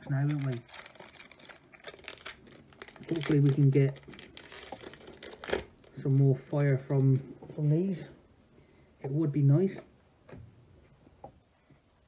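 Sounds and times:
foil wrapper crinkling and tearing: 0.0 - 7.2.

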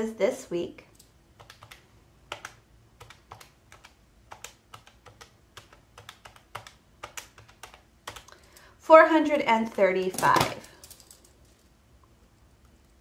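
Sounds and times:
calculator keys clicking: 1.0 - 8.4.

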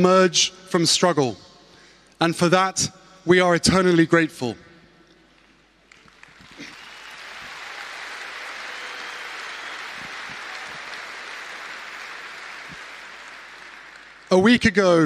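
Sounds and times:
audience applauding: 5.9 - 14.5.

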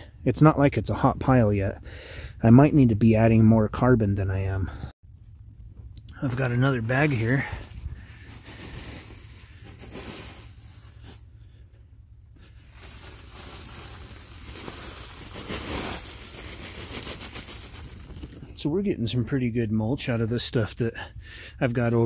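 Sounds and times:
plastic sack rustling: 6.3 - 11.4, 12.4 - 18.6
mulch pouring onto a pile: 12.7 - 17.8.

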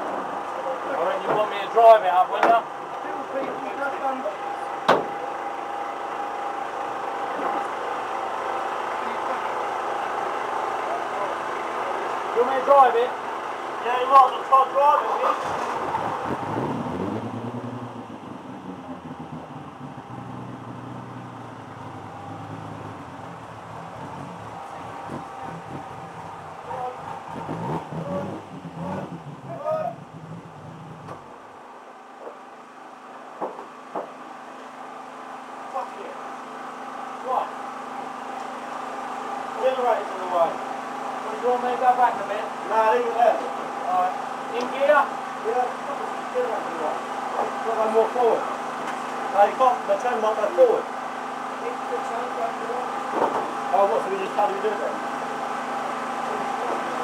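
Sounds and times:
race car engine idling: 0.5 - 33.4
steady hum: 15.6 - 32.1.

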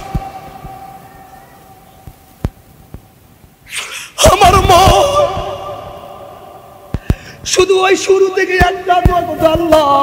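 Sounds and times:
loudspeaker ringing tone: 0.0 - 2.4.

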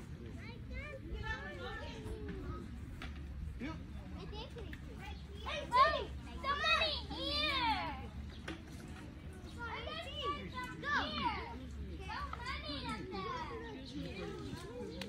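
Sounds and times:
children calling and chattering: 0.0 - 15.0.

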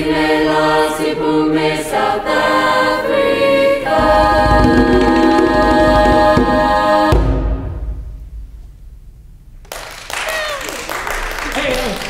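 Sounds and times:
choir singing: 0.0 - 7.8
hand drum: 4.0 - 7.6
faint low rumble: 4.0 - 9.7
applause: 9.6 - 12.0.

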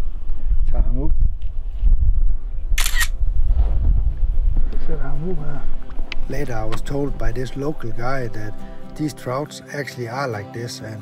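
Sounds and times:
wind buffeting microphone: 0.0 - 8.3.

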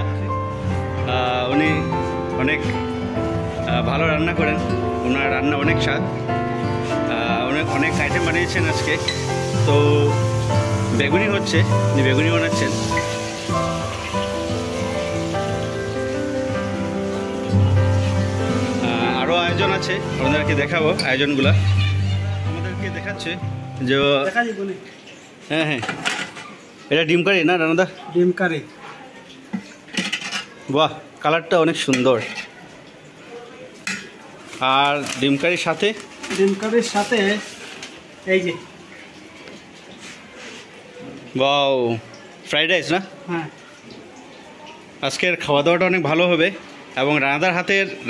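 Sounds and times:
background music with held notes: 0.0 - 24.7
food deep-frying in oil: 6.8 - 25.7, 29.2 - 48.0
person speaking: 7.0 - 13.0, 18.8 - 24.8.

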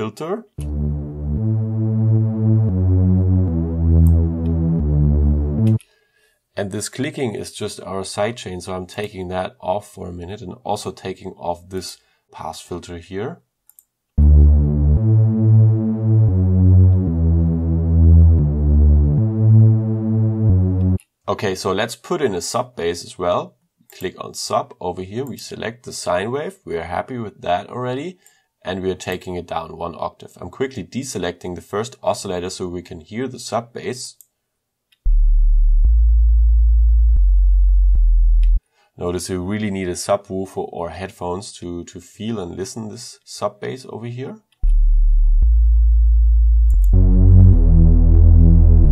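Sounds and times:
short click at note change: 0.6 - 1.0, 46.7 - 47.0
synth bass playing low notes: 0.6 - 5.8, 14.2 - 21.0, 35.1 - 38.6, 44.6 - 48.9.

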